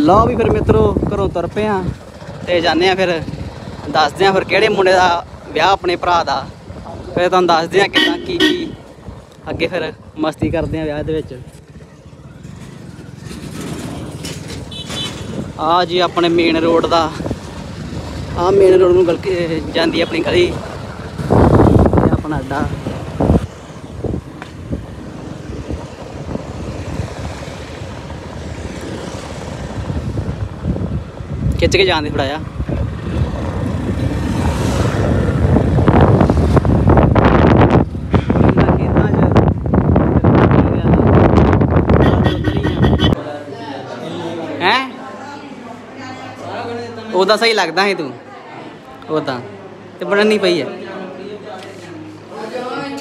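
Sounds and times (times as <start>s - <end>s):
wind buffeting microphone: 0.0s - 5.9s, 6.5s - 43.2s
road and engine rumble: 0.0s - 43.3s
motorcycle engine passing: 11.6s - 15.5s.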